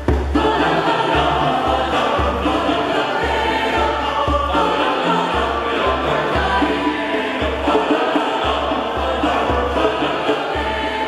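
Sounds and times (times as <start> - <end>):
instrumental accompaniment: 0.0 - 11.0
mixed choir singing: 0.0 - 11.0.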